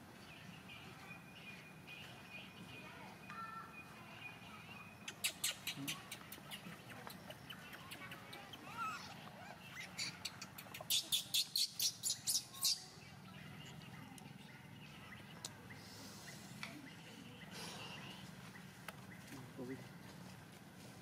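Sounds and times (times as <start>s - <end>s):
soft wavering monkey call: 5.0s - 12.9s
baby monkey shrill squeals: 8.6s - 10.2s, 10.9s - 12.9s.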